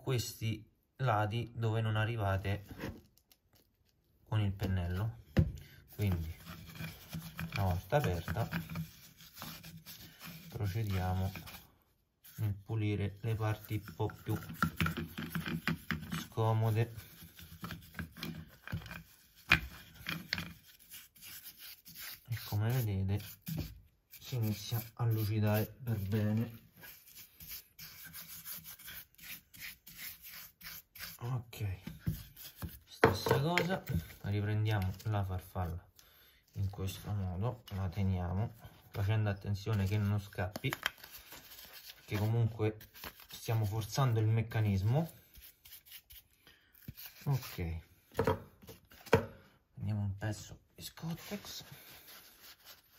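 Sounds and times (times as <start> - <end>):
paintbrush scrubbing metal: 13.2 - 31.2.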